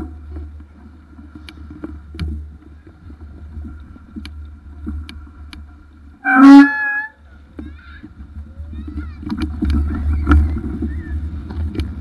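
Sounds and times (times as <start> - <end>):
bike rumbling and rattling: 0.0 - 12.0
wind on microphone: 1.3 - 12.0
bicycle horn honk: 6.2 - 7.2.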